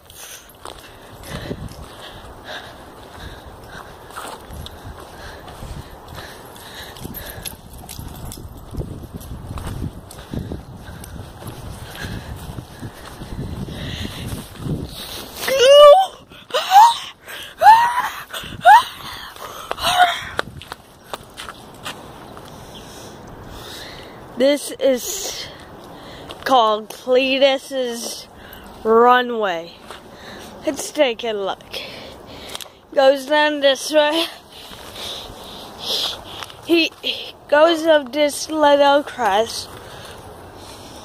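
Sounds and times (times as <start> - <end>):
footsteps on grass: 0.4 - 15.6, 19.3 - 22.7, 34.2 - 41.0.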